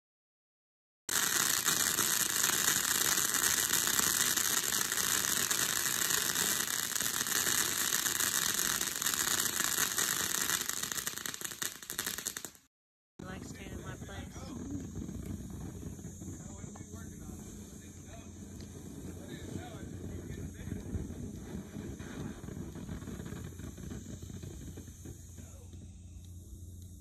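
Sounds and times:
firework fountain crackling hiss: 1.1 - 27.0.

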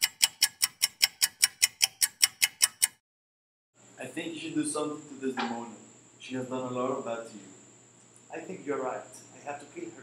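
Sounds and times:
clock-like ticking: 0.0 - 3.0.

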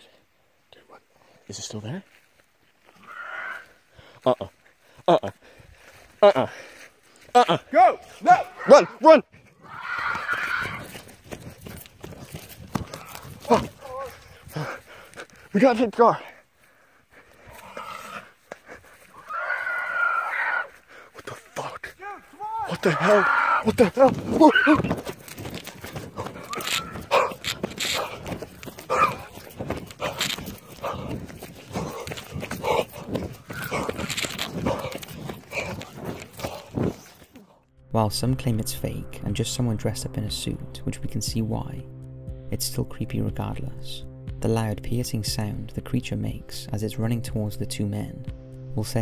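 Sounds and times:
running footsteps on forest ground: 1.2 - 37.6
breathless cries: 2.9 - 37.6
short cries: 26.4 - 28.2
handheld phone rattling: 34.0 - 35.2.

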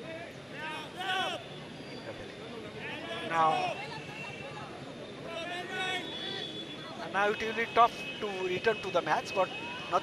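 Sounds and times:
football crowd noise: 0.0 - 10.0.

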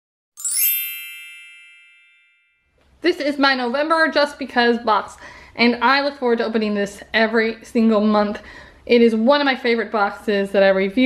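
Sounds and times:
bright chime ringing: 0.4 - 2.8.

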